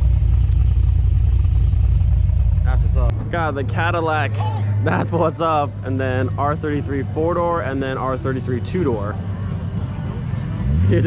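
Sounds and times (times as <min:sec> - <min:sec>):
car engine idling: 0:00.0 - 0:10.9.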